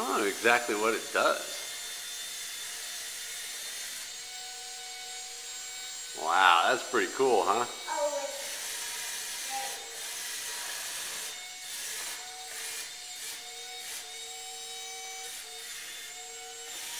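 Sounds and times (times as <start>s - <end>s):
toy car fan and motors whirring: 0.0s - 16.9s.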